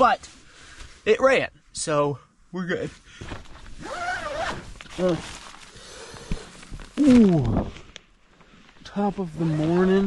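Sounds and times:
tent zipper opening: 3.6 - 7.6.

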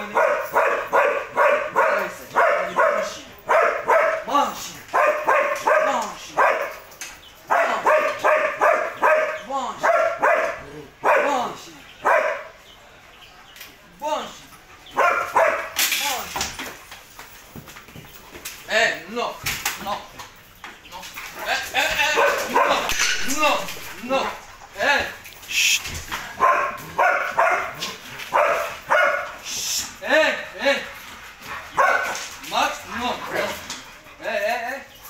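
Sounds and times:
dog barking: 0.0 - 4.3, 4.9 - 6.8, 7.5 - 11.4, 12.0 - 12.6, 14.9 - 15.8, 21.4 - 23.7, 26.3 - 29.4, 31.8 - 32.2.

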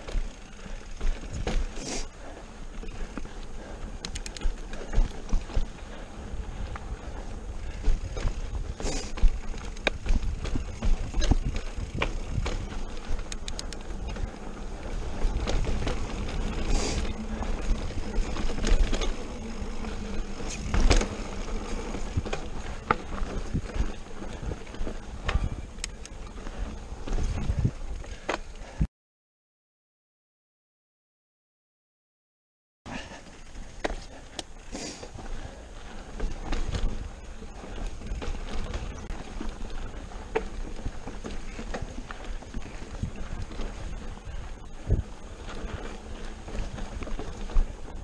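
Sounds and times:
bike rattles: 0.0 - 28.8, 32.9 - 48.0
wind and tyre rumble: 0.0 - 28.9, 32.9 - 48.0.

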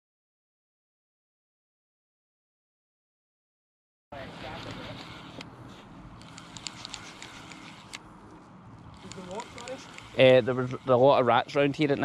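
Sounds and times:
light irregular clicks: 6.2 - 8.0, 8.8 - 10.2.

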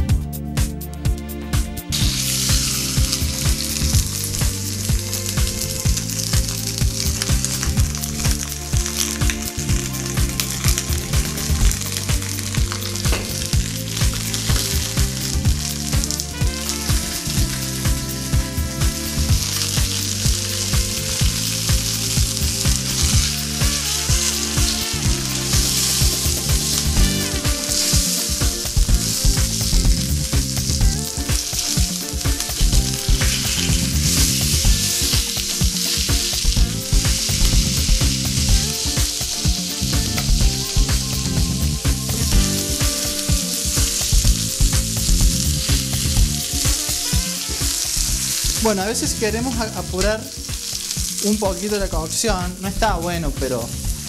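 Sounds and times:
low musical tones: 0.0 - 54.0
meat sizzling in a frying pan: 1.9 - 54.0.

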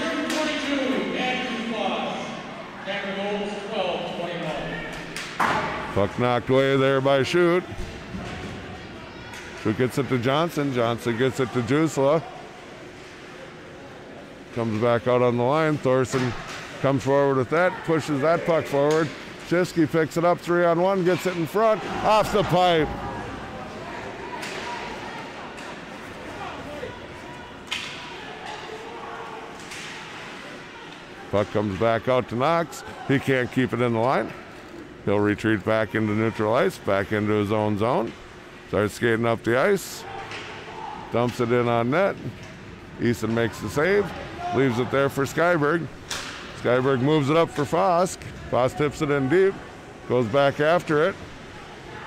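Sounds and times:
murmur of spectators: 0.0 - 52.0
faint voices: 21.3 - 37.1.

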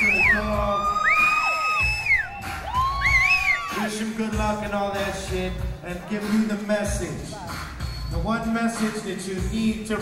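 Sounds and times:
deep bass beat: 0.0 - 10.0.

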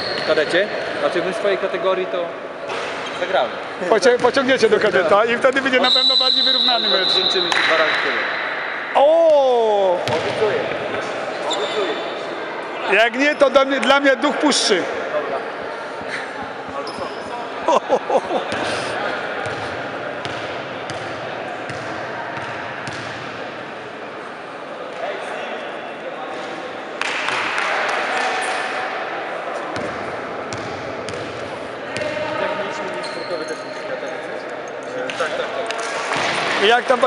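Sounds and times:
echoing voices: 3.4 - 22.8.

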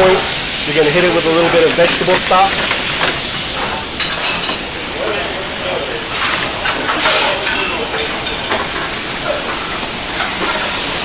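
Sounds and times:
stock sizzling in hot pan: 0.0 - 11.0.

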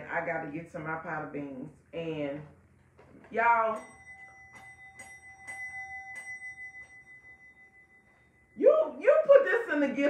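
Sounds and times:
hand bell ringing: 3.7 - 8.7.

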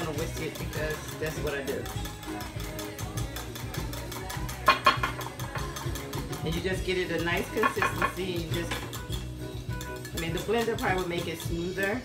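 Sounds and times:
background music: 0.0 - 12.0
whisk beating batter: 0.0 - 12.0
whisk clinking against glass: 0.0 - 12.0.

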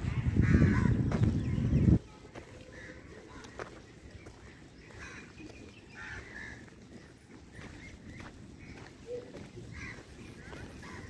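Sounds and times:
crows cawing faintly: 0.0 - 11.0.

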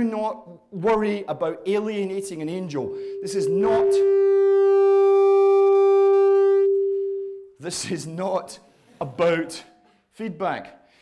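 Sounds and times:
person talking: 0.8 - 4.1
microphone feedback howl: 2.5 - 7.6.

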